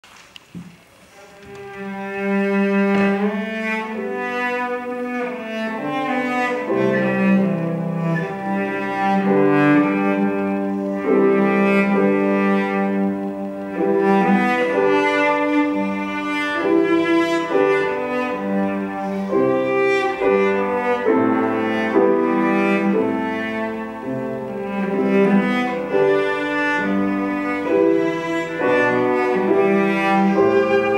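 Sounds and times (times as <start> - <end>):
piano accompaniment: 0.6 - 30.9
cello playing bowed notes: 1.0 - 30.9.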